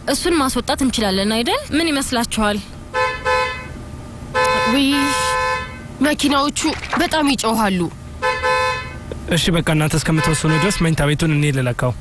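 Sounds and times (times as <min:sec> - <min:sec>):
horn or buzzer tone: 0:04.4 - 0:05.8, 0:10.2 - 0:10.9
person speaking: 0:06.0 - 0:07.9.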